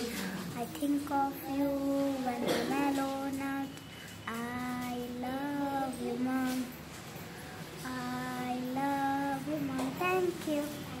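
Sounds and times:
child singing: 0.6 - 6.7, 7.8 - 11.0.

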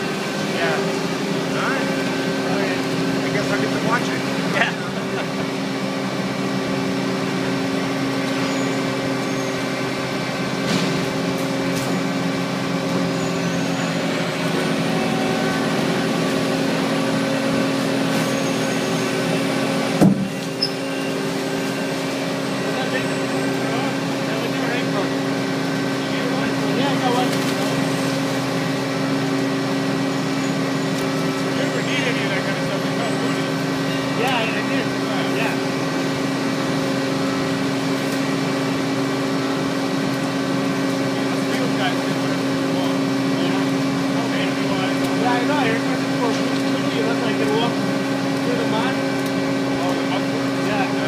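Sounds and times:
construction machinery engine drone: 0.0 - 51.0.

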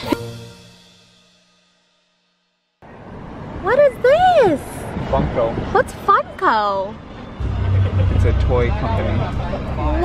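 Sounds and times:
car driving on street: 2.8 - 10.0.

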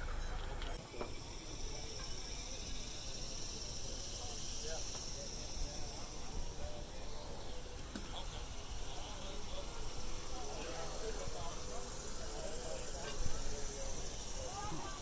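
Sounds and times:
faint distant chatter: 0.0 - 15.0
insects buzzing: 0.0 - 15.0.

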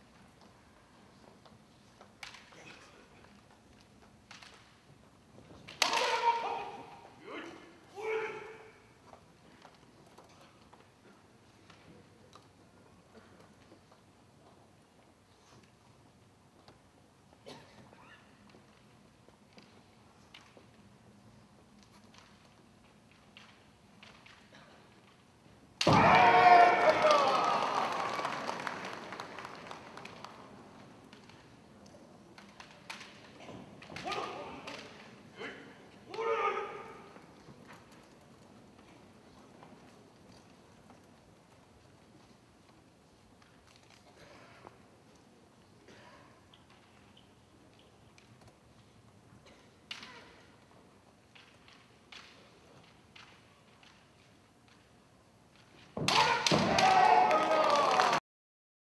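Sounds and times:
bamboo swords clacking: 2.0 - 3.5, 5.6 - 6.7, 32.4 - 35.3, 49.8 - 54.9
loud drawn-out shout: 5.8 - 8.8, 25.9 - 28.5, 36.1 - 37.2, 56.1 - 58.2
audience applause: 26.5 - 30.5, 56.7 - 58.2.

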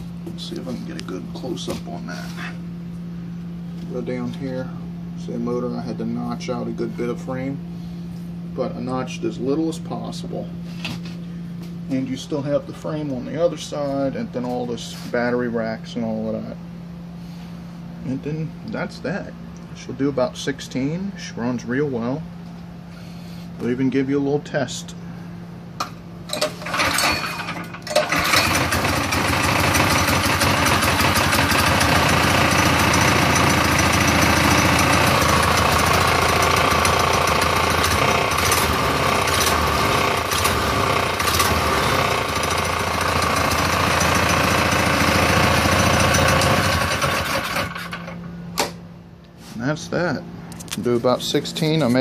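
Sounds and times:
small gas engine running: 26.3 - 48.2.

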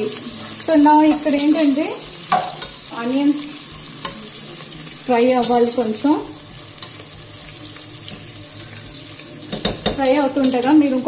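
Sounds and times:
onions sizzling in oil: 0.0 - 11.0
spatula knocking and scraping pot: 9.4 - 10.1.

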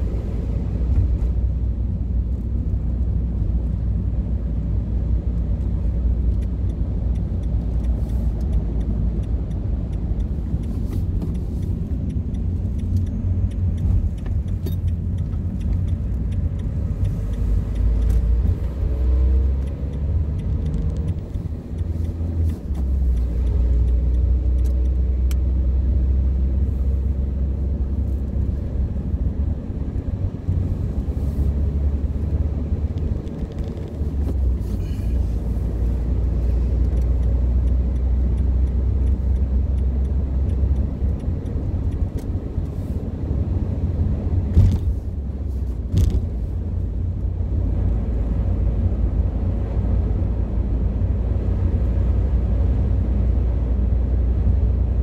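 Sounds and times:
car engine accelerating: 0.0 - 55.0.

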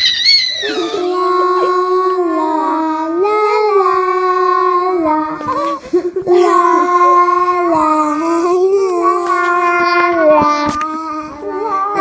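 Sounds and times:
child singing eerie held notes: 0.5 - 12.0.

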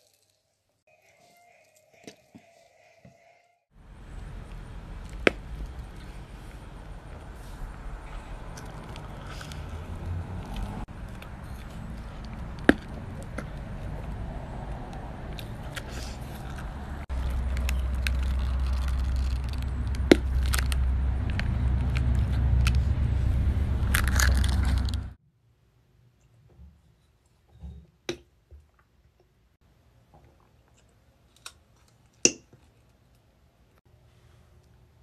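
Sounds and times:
low rumble: 3.8 - 25.2
chewing: 8.1 - 13.7.

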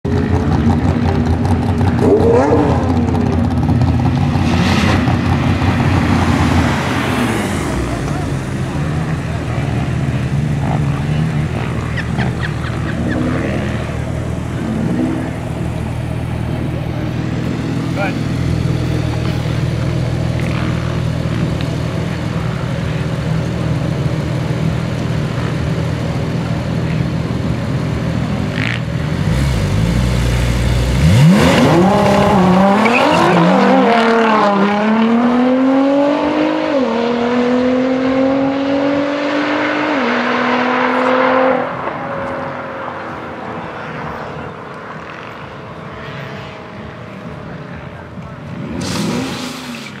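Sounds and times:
car engines revving and accelerating: 0.1 - 50.0.

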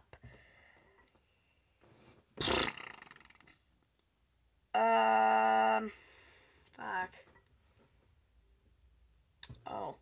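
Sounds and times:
person making rough vocal noise: 2.4 - 3.6, 4.8 - 6.0.

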